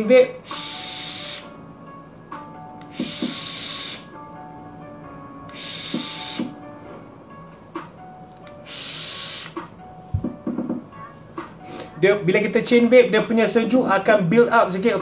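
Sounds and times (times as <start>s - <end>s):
background music: 0.0s - 15.0s
airy vape draws and exhales: 0.5s - 1.5s, 2.8s - 4.2s, 5.5s - 6.6s, 8.6s - 9.7s
knock: 10.2s - 10.9s.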